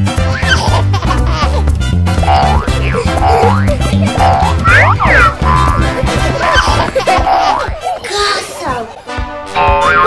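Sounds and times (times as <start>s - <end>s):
upbeat background music: 0.0s - 10.0s
cartoon boing sound effects: 2.2s - 5.9s, 9.6s - 10.0s.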